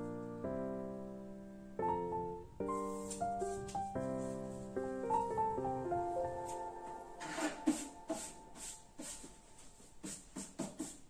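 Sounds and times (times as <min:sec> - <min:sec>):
piano music: 0:00.0 - 0:10.2
soft rustles and taps: 0:02.7 - 0:04.7, 0:06.3 - 0:11.0.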